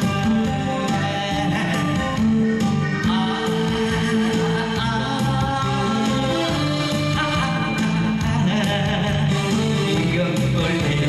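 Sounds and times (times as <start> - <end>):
man singing into a microphone: 0.0 - 11.0
recorded backing music: 0.0 - 11.0.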